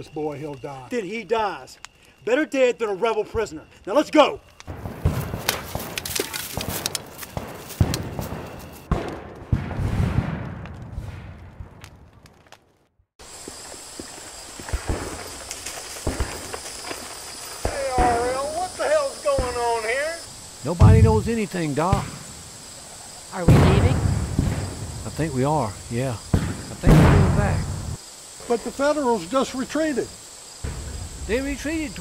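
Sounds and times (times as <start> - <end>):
insect chorus: 0.0 - 8.9, 13.2 - 32.0
hurried footsteps: 4.9 - 8.9.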